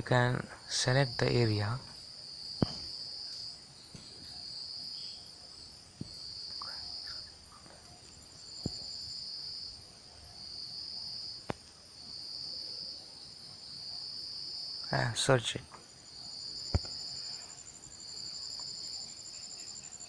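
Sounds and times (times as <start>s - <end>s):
crickets trilling: 0.0s - 20.0s.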